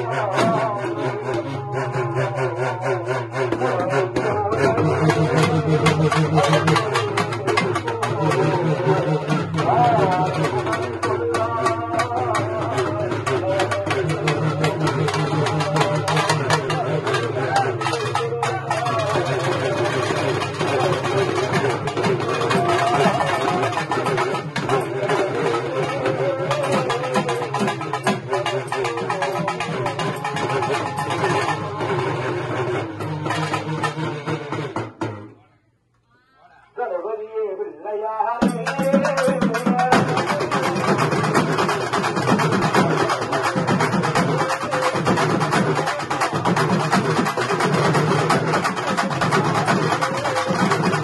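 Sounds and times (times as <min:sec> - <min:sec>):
drum ensemble playing: 0:00.0 - 0:35.2, 0:38.4 - 0:51.0
wailing rubbed drum: 0:00.0 - 0:35.5, 0:38.4 - 0:51.0.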